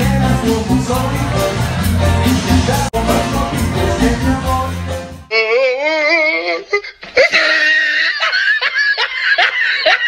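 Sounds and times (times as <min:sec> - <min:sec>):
person laughing high-pitched: 0:05.3 - 0:10.0.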